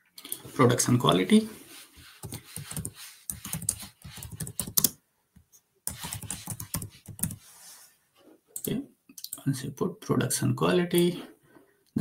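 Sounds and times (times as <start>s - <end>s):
computer keyboard typing: 2.2s - 5.0s, 5.9s - 7.4s.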